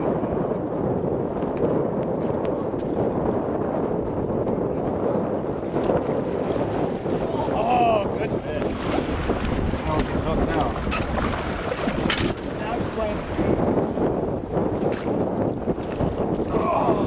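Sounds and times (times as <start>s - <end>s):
choppy lake waves: 0.0s - 17.0s
wind buffeting microphone: 0.0s - 17.0s.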